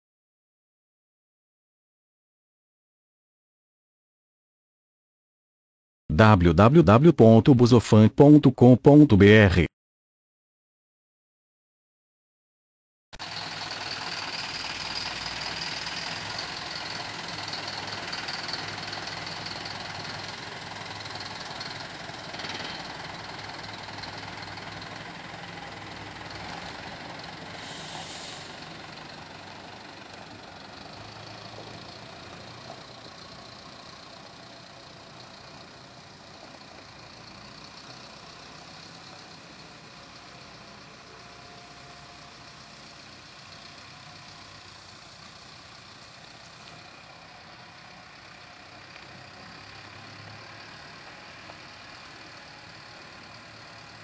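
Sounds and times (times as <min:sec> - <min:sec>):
diesel bus engine driving away: 0:13.2 - 0:54.0
short hiss: 0:27.5 - 0:28.6.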